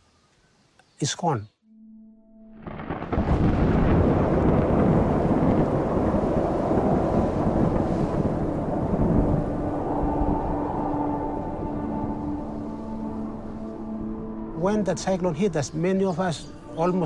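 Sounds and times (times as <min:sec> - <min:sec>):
musical drone: 0:01.6 - 0:05.6, 0:07.5 - 0:17.0
thunder rumbling: 0:02.6 - 0:14.2
wind and rain rushing: 0:02.6 - 0:17.0.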